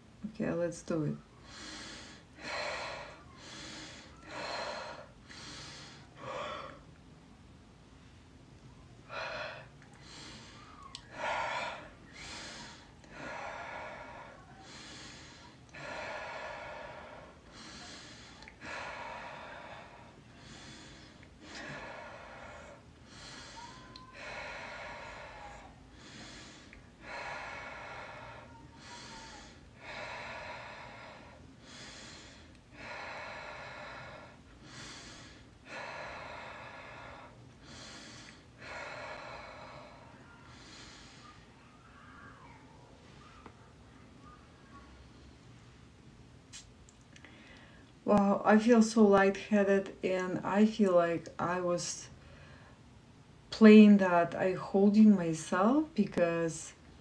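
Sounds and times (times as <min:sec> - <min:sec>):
woman breathing deeply: 0:01.2 - 0:07.0, 0:08.7 - 0:42.6, 0:47.2 - 0:48.0, 0:52.1 - 0:52.9.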